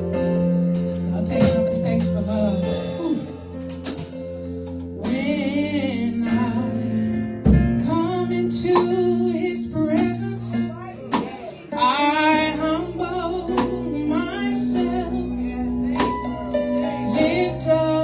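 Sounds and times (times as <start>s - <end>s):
sustained keyboard chords: 0.0s - 18.0s
woman singing gospel: 5.0s - 18.0s.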